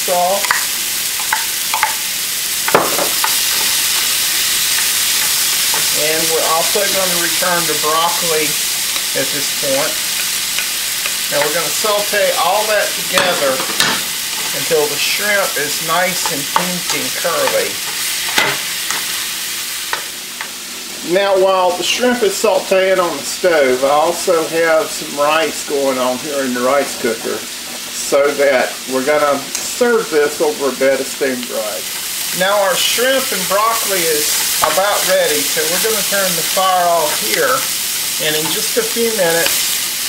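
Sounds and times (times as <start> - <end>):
food sizzling in oil: 0.0 - 40.0.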